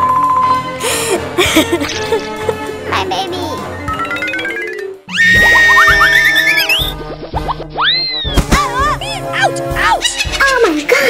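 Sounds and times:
children's background music: 0:00.0 - 0:11.0
falling tones: 0:03.8 - 0:07.0
swooping effects: 0:03.8 - 0:07.7
cartoon sound effects: 0:03.9 - 0:07.0.

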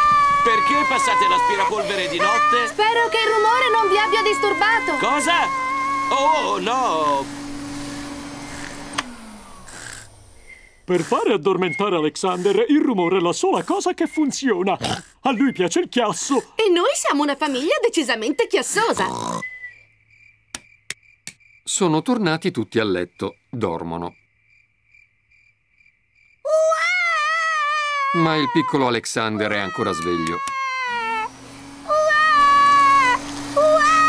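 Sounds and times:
crickets chirping: 0:00.0 - 0:07.3, 0:09.5 - 0:31.1
vacuum cleaner humming: 0:00.0 - 0:12.7, 0:28.2 - 0:34.0
motor winding down: 0:00.0 - 0:13.9, 0:28.1 - 0:34.0.

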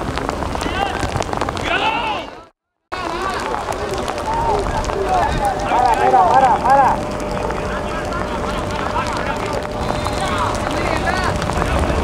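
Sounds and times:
voices calling and shouting: 0:00.6 - 0:12.0
steady background noise: 0:03.0 - 0:12.0.

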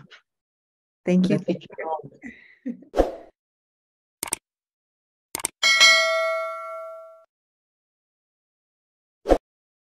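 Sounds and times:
notification bell chime: 0:05.6 - 0:07.3.

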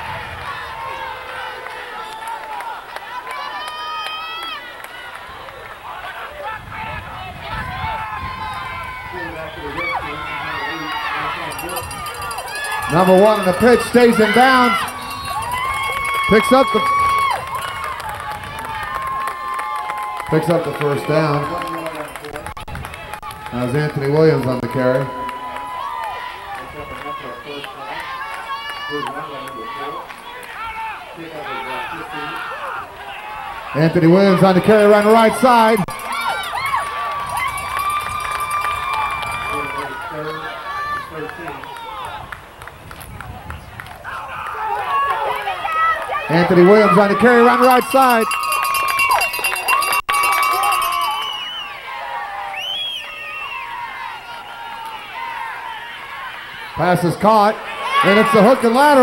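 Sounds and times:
spectators shouting: 0:00.0 - 0:21.8, 0:22.9 - 0:42.3, 0:44.0 - 0:59.0
background crowd hubbub: 0:00.0 - 0:59.0.

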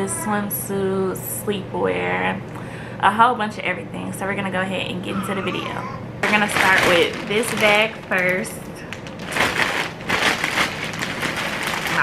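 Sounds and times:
plastic packaging crinkling: 0:06.2 - 0:12.0.

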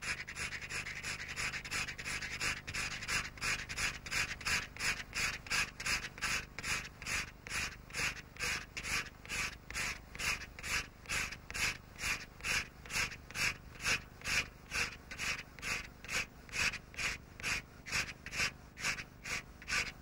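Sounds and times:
knife blade scraping crayon: 0:00.0 - 0:20.0.

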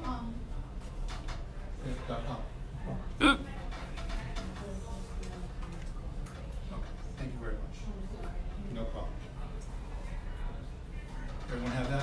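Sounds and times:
faint voices: 0:00.0 - 0:07.2
person hiccuping: 0:03.2 - 0:03.6.

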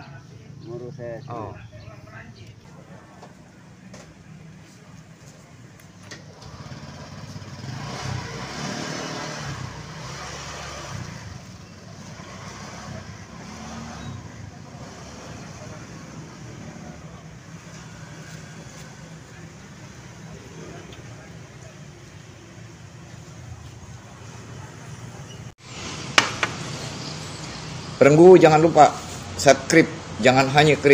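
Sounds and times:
motorcycle riding past: 0:06.4 - 0:19.4.

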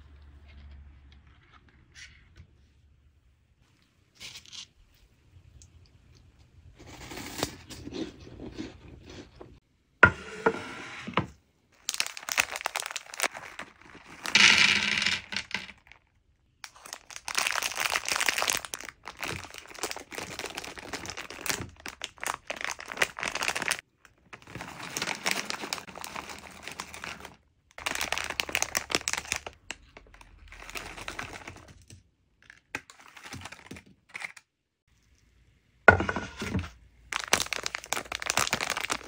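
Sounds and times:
plastic packets crinkling: 0:11.8 - 0:34.3, 0:37.1 - 0:39.0.

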